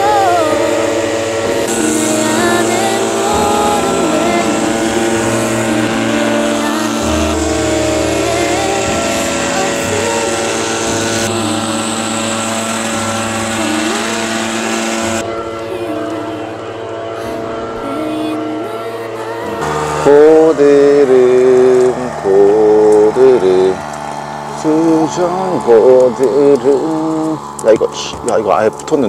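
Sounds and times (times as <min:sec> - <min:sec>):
background music: 0:00.0 - 0:27.5
leaf blower engine running: 0:00.0 - 0:29.0.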